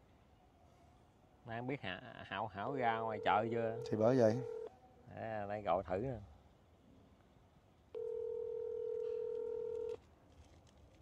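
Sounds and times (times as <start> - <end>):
phone ringback beep: 3.1 - 4.7, 8.0 - 10.0.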